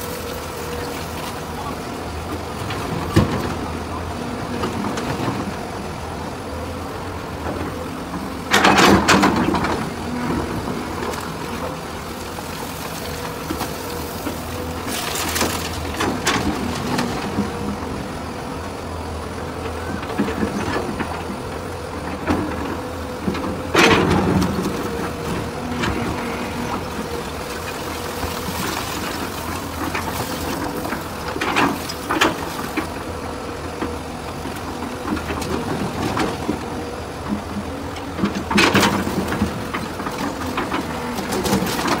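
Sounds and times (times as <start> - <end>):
excavator diesel engine running: 0.0 - 42.0.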